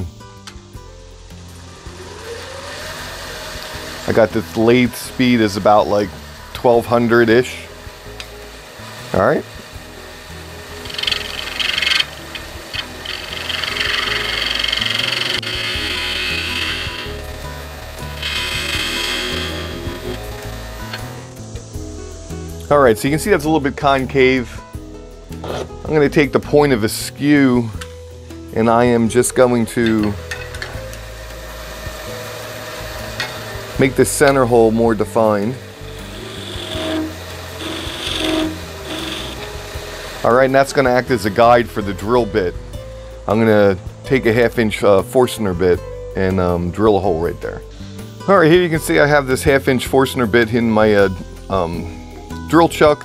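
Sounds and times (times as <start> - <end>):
background music: 0.0 - 53.0
lathe gouge scraping wood: 1.6 - 21.4, 30.8 - 42.0.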